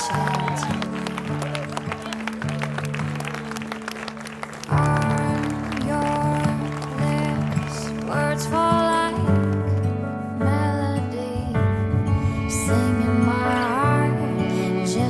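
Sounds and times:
crowd clapping and cheering: 0.0s - 10.1s
soft music track: 0.0s - 15.0s.

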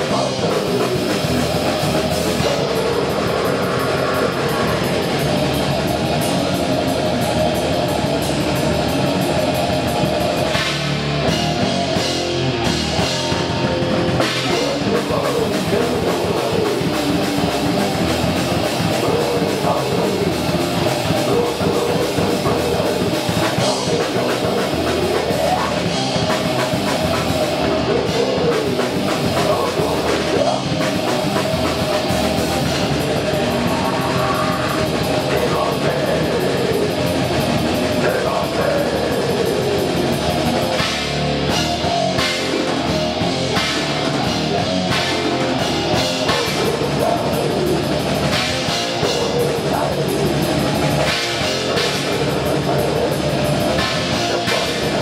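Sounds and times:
distorted electric guitar riffing: 0.0s - 55.0s
drum kit with cymbal hits: 0.0s - 55.0s.

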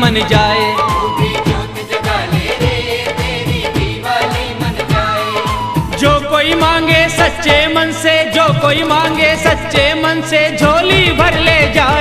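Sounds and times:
devotional melody: 0.0s - 12.0s
drum beat: 0.0s - 12.0s.

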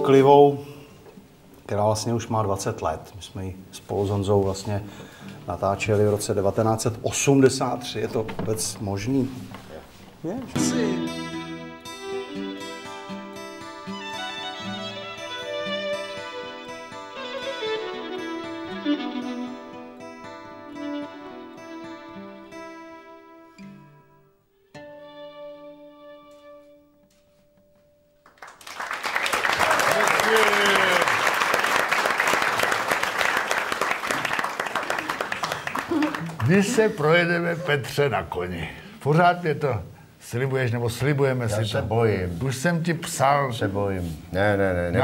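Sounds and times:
acoustic guitar: 4.3s - 28.3s
violin: 10.4s - 23.8s, 24.7s - 27.1s
loud applause: 28.4s - 37.3s.

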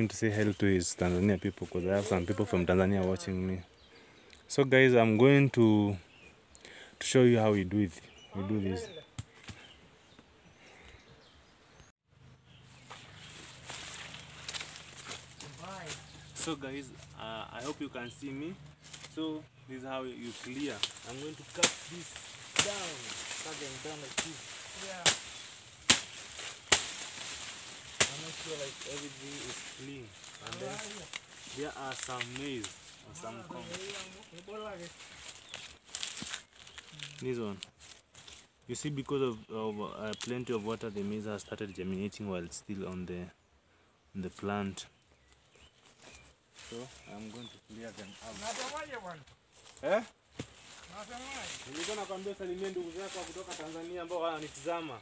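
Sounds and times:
machete chopping dry stalks: 12.9s - 16.0s, 20.4s - 29.7s, 50.3s - 50.8s
sharp snap: 20.8s - 22.9s, 25.0s - 27.0s.

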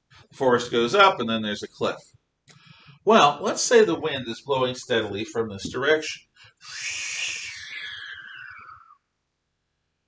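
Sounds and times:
man imitating wind hiss: 6.6s - 8.9s.

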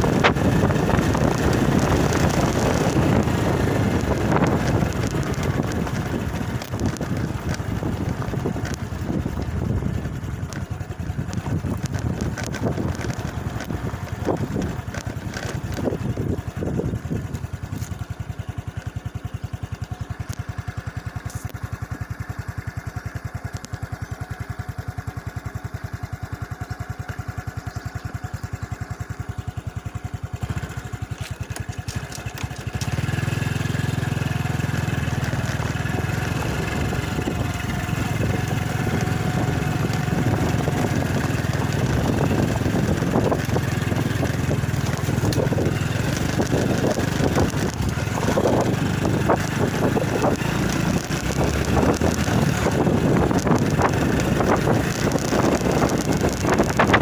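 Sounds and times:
wind on microphone: 0.0s - 17.4s, 34.6s - 57.0s
motorcycle engine running: 0.0s - 57.0s.

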